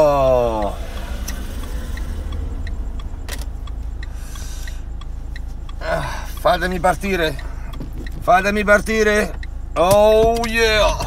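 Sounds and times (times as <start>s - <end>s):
car engine rumble: 0.0s - 11.0s
faint regular ticking: 0.0s - 11.0s
road noise: 0.0s - 11.0s
sharp click: 0.6s - 3.8s.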